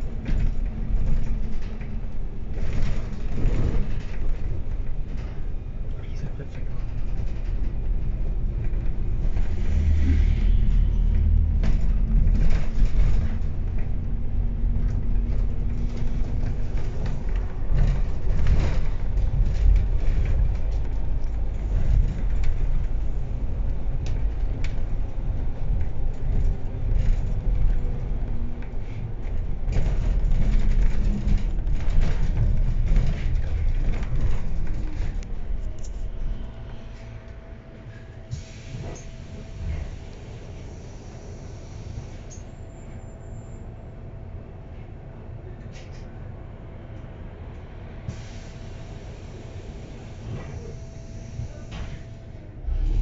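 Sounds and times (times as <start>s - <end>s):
bus engine and road rumble: 0.0s - 53.0s.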